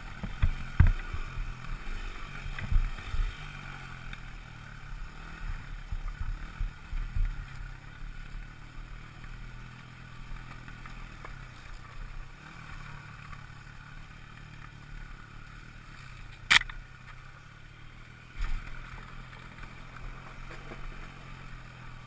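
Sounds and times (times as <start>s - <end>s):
dirt bike engine running: 0.0s - 22.0s.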